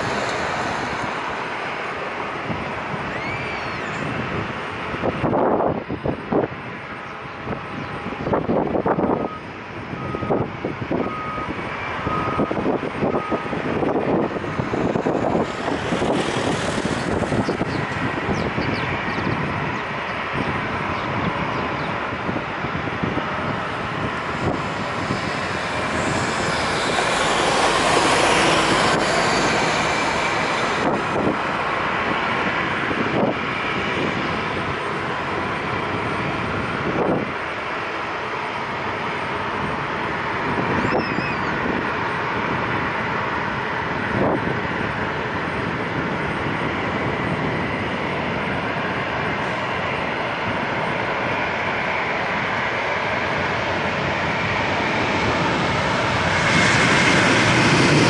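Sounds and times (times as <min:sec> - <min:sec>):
jet engines roaring: 0:00.0 - 0:58.0.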